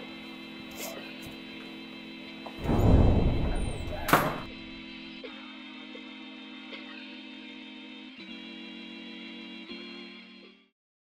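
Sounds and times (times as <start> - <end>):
heavy thunk: 2.6 - 4.8.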